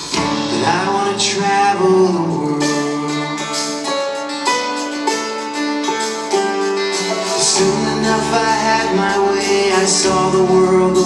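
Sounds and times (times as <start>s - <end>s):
acoustic guitar: 0.0s - 11.0s
bass guitar: 0.0s - 11.0s
person singing: 0.1s - 4.2s, 6.9s - 11.0s.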